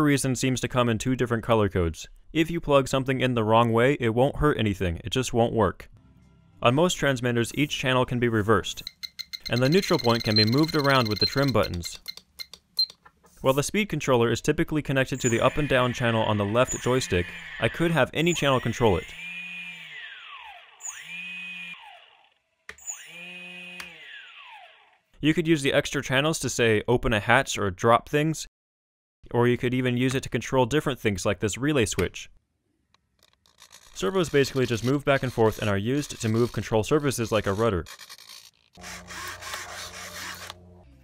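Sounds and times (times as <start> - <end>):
electric motor whine: 18.3 - 25.0, 38.8 - 41.0.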